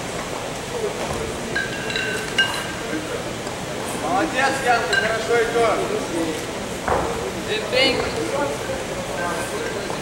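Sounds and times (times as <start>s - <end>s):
sports hall background noise: 0.0s - 10.0s.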